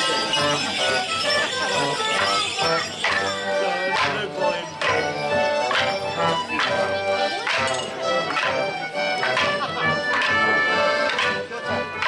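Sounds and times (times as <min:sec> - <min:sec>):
folk dance tune: 0:00.0 - 0:12.0.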